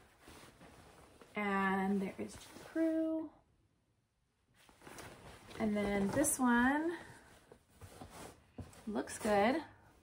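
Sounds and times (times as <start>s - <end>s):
cotton shirt rustling: 0.0s - 3.2s, 4.5s - 10.0s.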